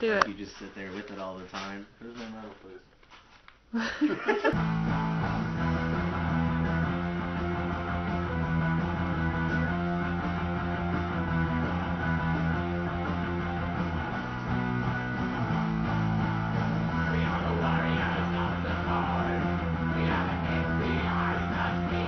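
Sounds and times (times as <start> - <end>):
guitar band music: 4.6 - 22.0.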